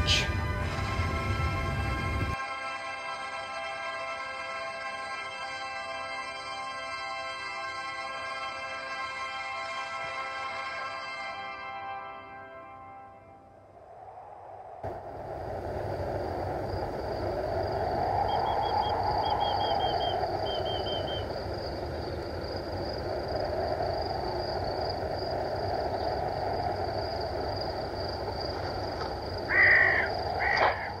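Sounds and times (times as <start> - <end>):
loud bird calls: 0.0 - 0.4, 18.4 - 21.3, 29.5 - 31.0
rushing outdoor ambience: 0.0 - 2.4, 13.4 - 31.0.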